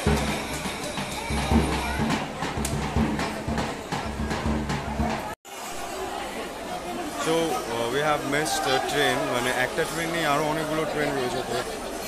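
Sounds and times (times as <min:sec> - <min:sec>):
crowd chattering: 0:00.0 - 0:12.0
bass drum beaten with mallet: 0:01.2 - 0:05.4.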